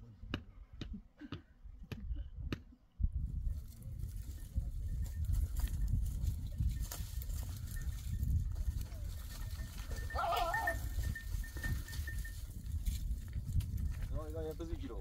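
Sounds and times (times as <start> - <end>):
goat bleating: 10.0 - 10.9.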